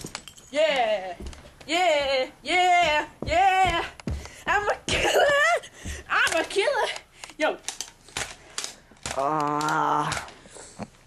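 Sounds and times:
person shouting: 9.2s - 10.3s.

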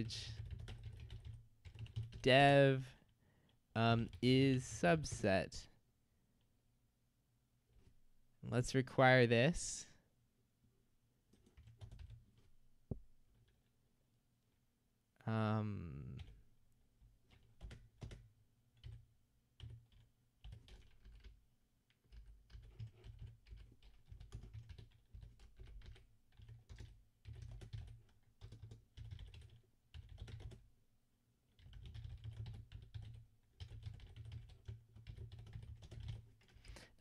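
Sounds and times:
faint keyboard typing: 0.0s - 4.3s, 11.3s - 12.5s, 13.3s - 13.7s, 16.0s - 30.7s, 31.5s - 37.0s.

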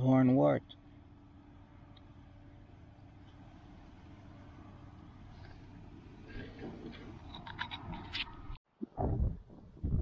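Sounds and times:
thin steady hum: 0.0s - 8.6s.

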